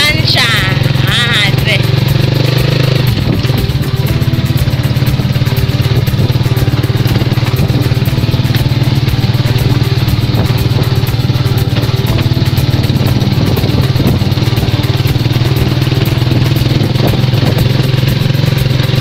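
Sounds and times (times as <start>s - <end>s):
motorcycle engine droning: 0.0s - 19.0s.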